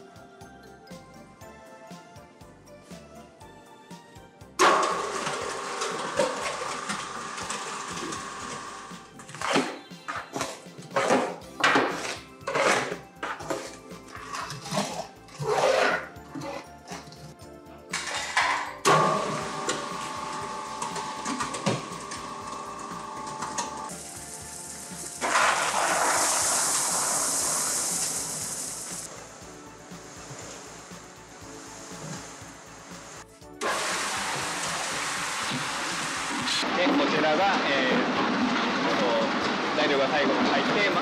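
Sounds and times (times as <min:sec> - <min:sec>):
background music: 0:00.0 - 0:41.0
sand and gravel pouring into mixer: 0:04.6 - 0:09.0, 0:19.0 - 0:41.0.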